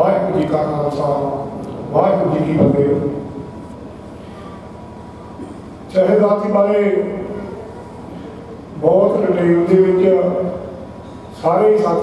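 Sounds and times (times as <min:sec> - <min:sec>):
man speaking over a microphone: 0:00.0 - 0:03.4, 0:05.9 - 0:07.6, 0:08.7 - 0:10.8, 0:11.4 - 0:12.0
steady low hum: 0:00.0 - 0:12.0.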